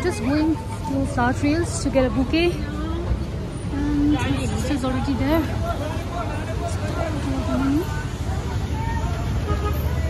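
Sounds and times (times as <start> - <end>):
faint voices of passers-by: 0.0 - 10.0
traffic rumble: 0.0 - 10.0.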